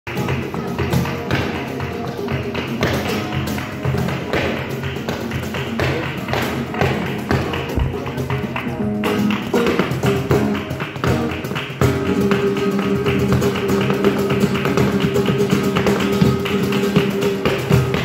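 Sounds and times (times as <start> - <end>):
acoustic guitar: 0.1 - 18.0
cajon drum: 0.1 - 18.0
dancer's feet rapping on wooden board: 0.2 - 18.0.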